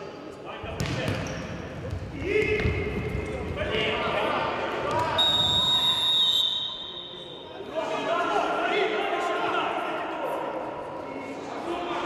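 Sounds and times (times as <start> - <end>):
footfalls on court floor: 0.7 - 3.7
referee's whistle blast: 5.1 - 7.5.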